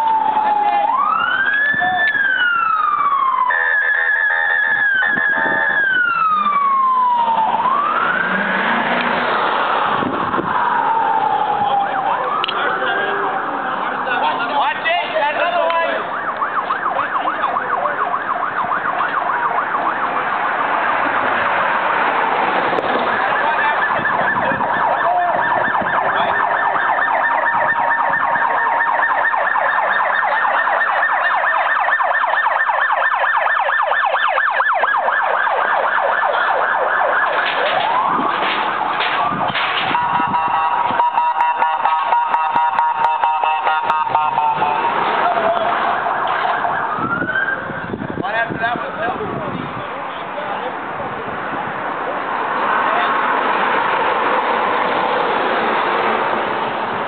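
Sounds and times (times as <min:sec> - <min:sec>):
police siren: 0:00.0 - 0:49.7.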